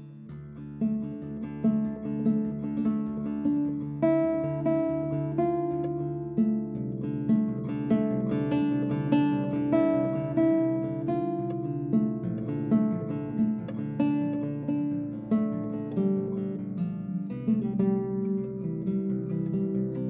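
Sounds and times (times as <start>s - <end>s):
fingerstyle classical guitar: 0.0s - 20.0s.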